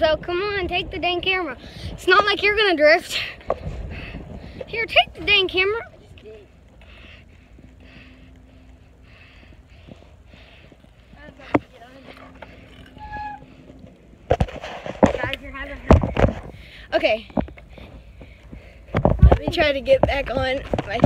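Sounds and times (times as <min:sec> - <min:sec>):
faint steady hum: 0:00.0 - 0:21.0
knocks and bumps on microphone: 0:14.3 - 0:16.6, 0:18.9 - 0:21.0.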